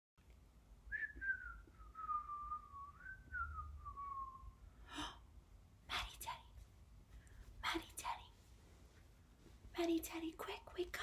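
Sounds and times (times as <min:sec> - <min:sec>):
person whistling: 0:00.9 - 0:04.6.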